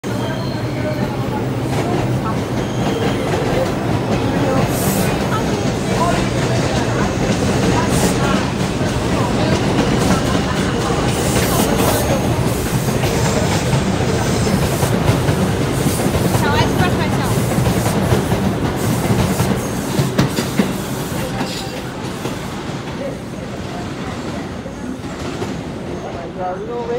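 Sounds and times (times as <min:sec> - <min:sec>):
train rail rumble: 0:00.0 - 0:26.9.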